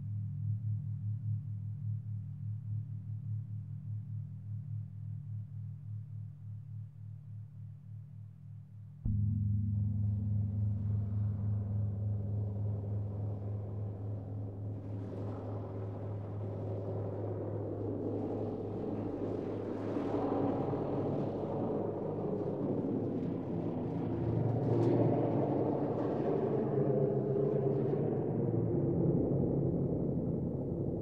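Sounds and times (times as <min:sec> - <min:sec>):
processed gong drone: 0:09.1 - 0:31.0.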